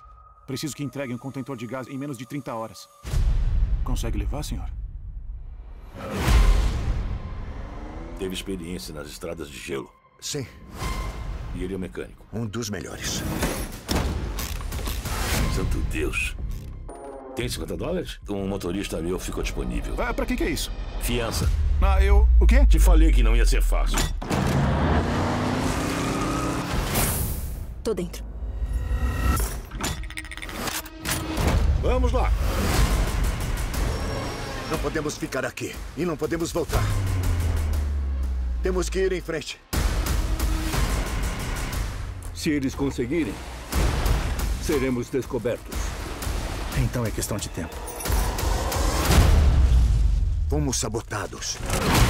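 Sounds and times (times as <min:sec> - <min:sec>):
dramatic trailer music: 0:00.0 - 0:52.0
heavy low rumble: 0:21.1 - 0:24.0
deep hit: 0:21.3 - 0:24.5.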